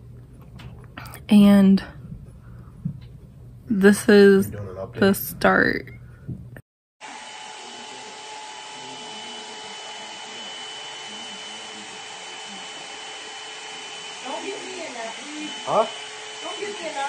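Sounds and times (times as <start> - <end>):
hair dryer running: 7.0 - 17.0.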